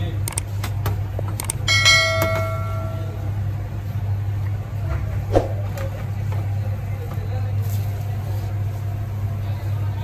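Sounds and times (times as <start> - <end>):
low machine hum: 0.0 - 10.0
ringing metallic strike: 1.7 - 3.2.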